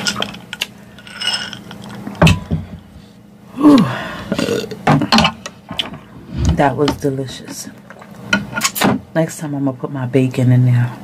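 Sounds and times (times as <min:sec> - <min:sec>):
woman burping: 0:03.6 - 0:05.3.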